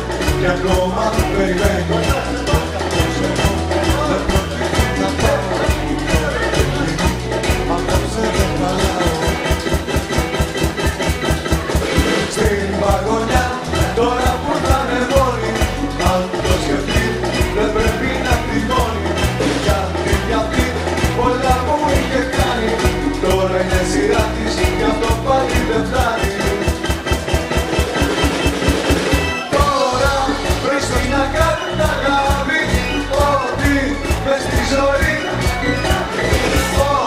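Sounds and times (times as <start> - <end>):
drums fast steady beat: 0.0 - 37.0
pop band music: 0.0 - 37.0.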